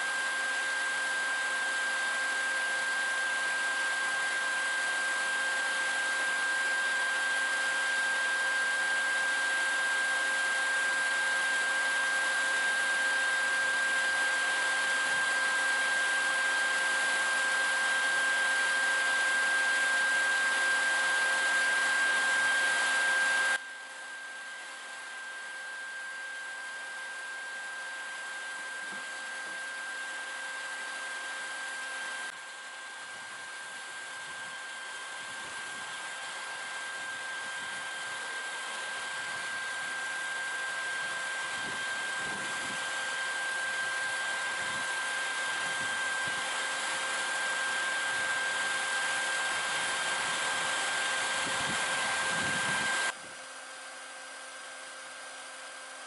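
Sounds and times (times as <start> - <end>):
vacuum motor whining: 0.0 - 56.0.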